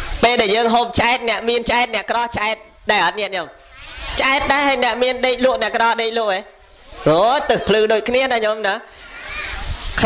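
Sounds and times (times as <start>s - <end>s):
man preaching into a microphone: 0.1s - 3.6s, 4.2s - 8.9s.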